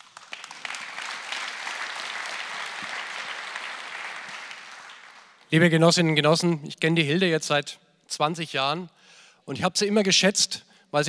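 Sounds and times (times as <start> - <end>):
large audience applauding: 0.0 - 5.5.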